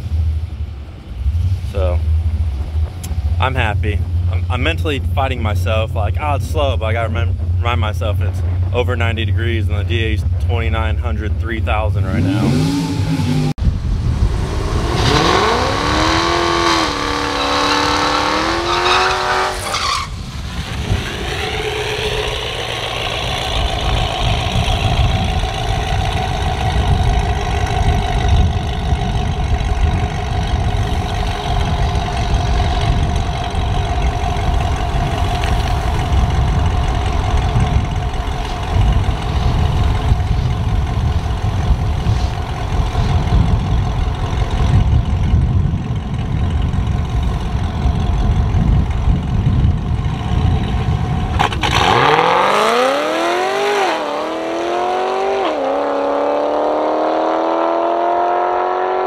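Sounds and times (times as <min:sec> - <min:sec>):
car engine idling: 0:00.0 - 0:12.6, 0:13.3 - 0:53.2.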